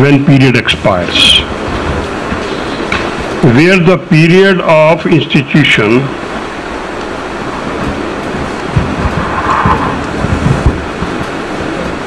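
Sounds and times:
steady hiss: 0.0s - 12.0s
low rumble: 7.2s - 12.0s
low bumps: 7.6s - 12.0s.

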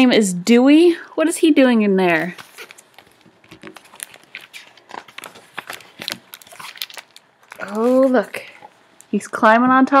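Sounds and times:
paper and cover rustling: 2.0s - 8.9s
book pages turning: 2.1s - 9.2s.

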